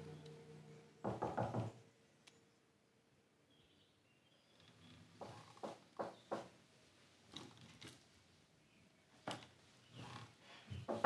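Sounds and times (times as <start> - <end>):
knocking on a door: 1.0 - 1.8, 5.2 - 6.5.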